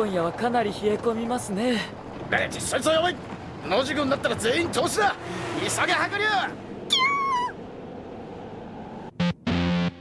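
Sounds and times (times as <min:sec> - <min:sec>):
cartoon creature squeak: 0:06.9 - 0:07.6.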